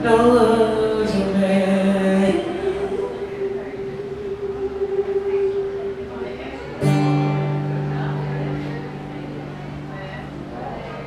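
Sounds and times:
acoustic guitar strum: 0:00.0 - 0:11.0.

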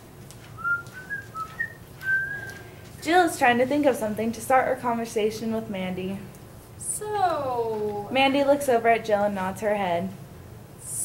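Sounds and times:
person whistling: 0:00.6 - 0:02.6.

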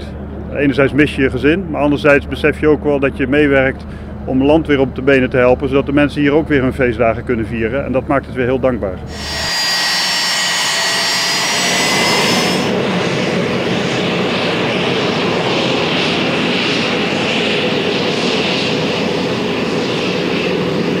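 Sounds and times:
jet engine roar: 0:00.0 - 0:05.0, 0:09.0 - 0:21.0
jet turbine whine: 0:00.0 - 0:21.0.

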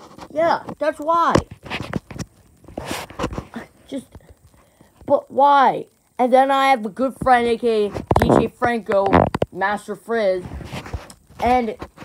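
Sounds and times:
breathy puffs and mouth noises: 0:01.6 - 0:05.1.

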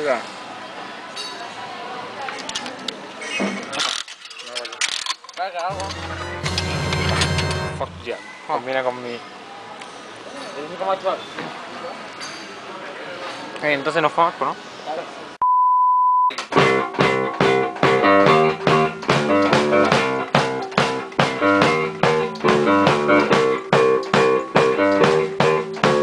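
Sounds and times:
guitar music with drums: 0:05.7 - 0:08.0, 0:16.4 - 0:26.0
steady electronic beep: 0:15.4 - 0:16.3.

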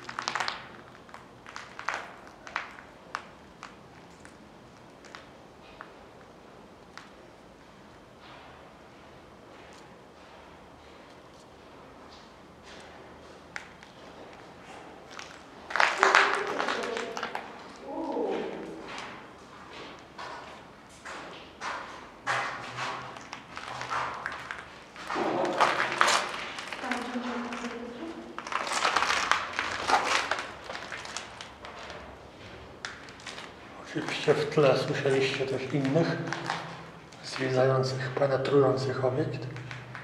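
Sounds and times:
people calling out: 0:16.0 - 0:18.9.

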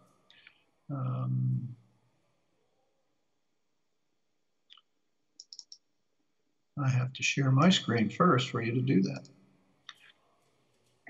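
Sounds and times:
faint computer clicks: 0:05.4 - 0:05.8.

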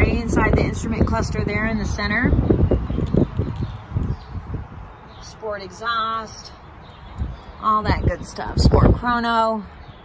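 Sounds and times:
microphone handling noise: 0:02.4 - 0:04.7.

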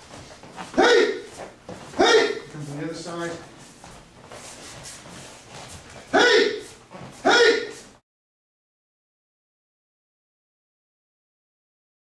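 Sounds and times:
bare feet shuffling on mats: 0:00.0 - 0:08.0
soft rustles: 0:00.0 - 0:08.0.

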